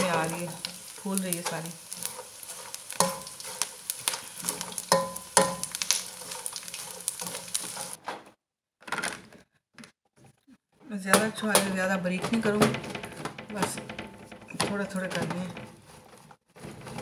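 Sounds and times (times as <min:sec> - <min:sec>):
gum sizzling in hot oil: 0:00.0 - 0:08.0
spoon scraping metal pan: 0:00.0 - 0:08.0.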